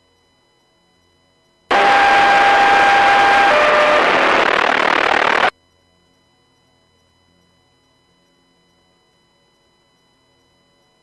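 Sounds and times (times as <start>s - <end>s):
radio static hiss: 1.7s - 5.5s
steady radio tone: 1.7s - 5.5s.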